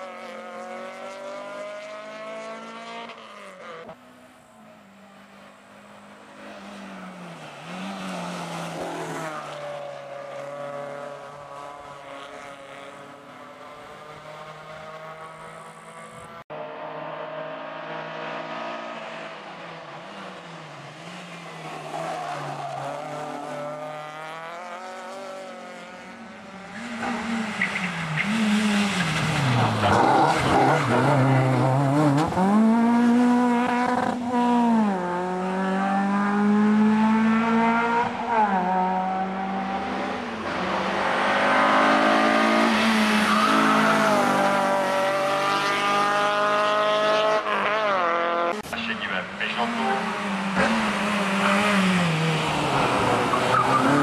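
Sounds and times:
rally car engines revving: 0.0s - 54.0s
tyre squeal: 43.0s - 44.2s, 53.2s - 54.0s.

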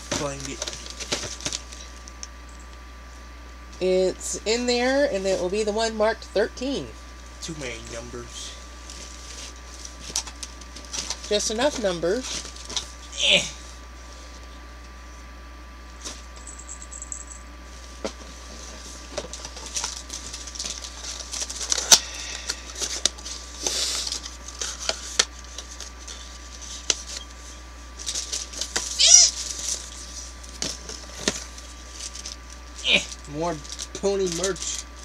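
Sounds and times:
packaging rustling and crinkling: 0.0s - 2.2s, 8.8s - 13.0s, 17.9s - 35.0s
short high-pitched call: 29.0s - 29.4s.

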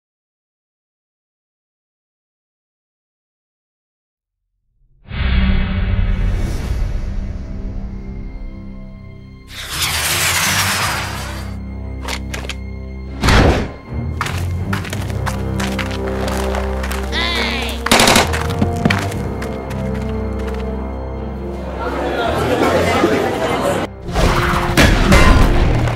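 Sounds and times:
film score music: 5.1s - 25.9s
sharp bangs and hits: 17.9s - 19.1s.

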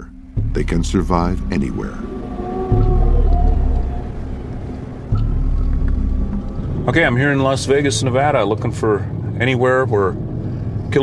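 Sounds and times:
deep low rumble: 0.0s - 11.0s
faint falling sustained tones: 1.0s - 7.1s.

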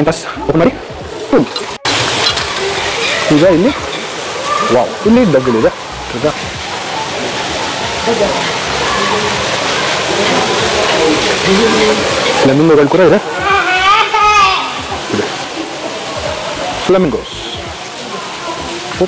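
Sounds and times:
people's voices: 0.0s - 19.0s
running water: 0.0s - 19.0s.

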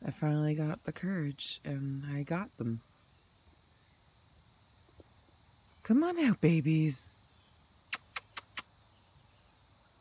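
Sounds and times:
faint background noise: 0.0s - 10.0s
quick sharp clicks: 7.9s - 8.7s.

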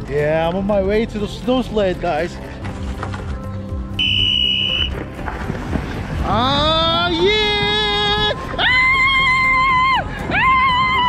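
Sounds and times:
background music: 0.0s - 11.0s
high electronic beep: 4.0s - 4.9s.

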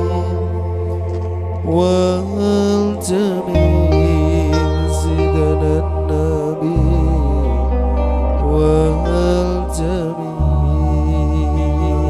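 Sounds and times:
man singing long wavering notes: 0.0s - 12.0s.

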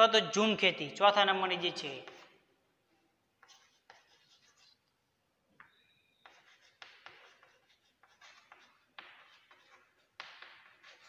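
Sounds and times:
chalk scratching on chalkboard: 1.8s - 2.5s, 3.4s - 5.0s, 5.6s - 11.0s
chalk squeak: 3.4s - 4.9s, 5.6s - 11.0s.

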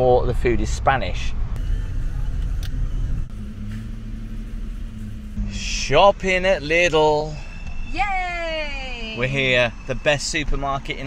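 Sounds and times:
car engine running at low revs: 0.0s - 7.9s.

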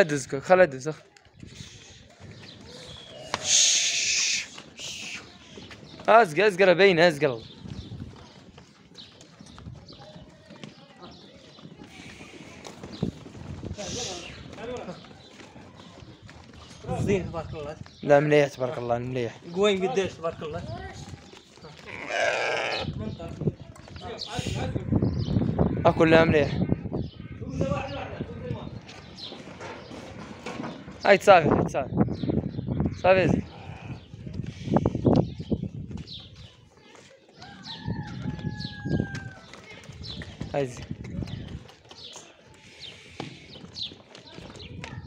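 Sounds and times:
hooves shuffling and knocking: 0.0s - 24.6s, 28.5s - 31.5s, 33.5s - 45.0s
sheep bleating: 21.8s - 22.9s.

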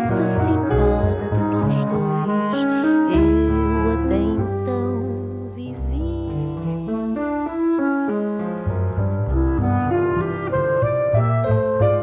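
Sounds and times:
clarinet melody: 0.0s - 12.0s
double bass notes: 0.0s - 12.0s
grand piano chords: 0.0s - 12.0s.

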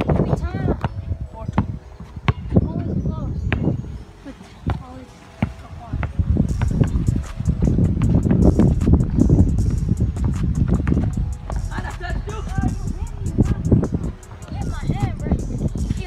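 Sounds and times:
basketball bouncing: 10.1s - 12.0s.

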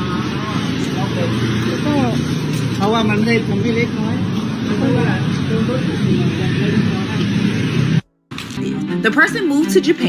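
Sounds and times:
voices speaking: 0.0s - 10.0s.

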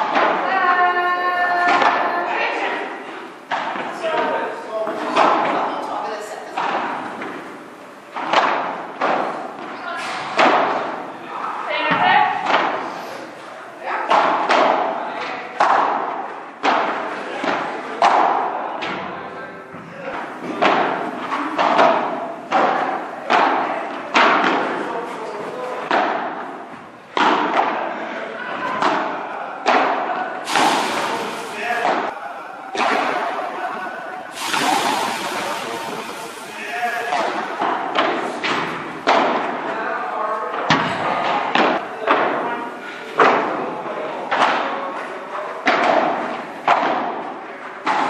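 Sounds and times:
rackets hitting ball: 0.0s - 48.0s.

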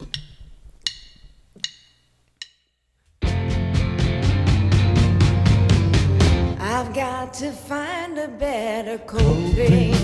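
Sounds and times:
drumsticks clicking together: 0.0s - 2.7s.

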